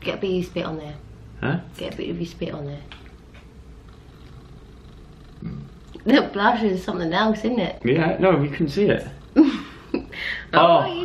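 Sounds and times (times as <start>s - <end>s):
steady low hum: 0.0s - 11.0s
person murmuring: 5.4s - 5.7s.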